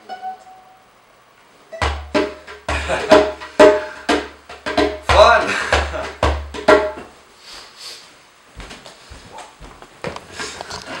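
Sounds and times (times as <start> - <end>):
hand drum strokes: 1.8 - 7.2
person speaking: 5.1 - 6.1.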